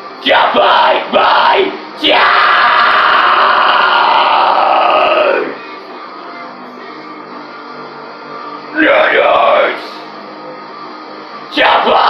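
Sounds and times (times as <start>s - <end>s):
man screaming harshly: 0.2s - 5.6s, 8.8s - 9.8s, 11.5s - 12.0s.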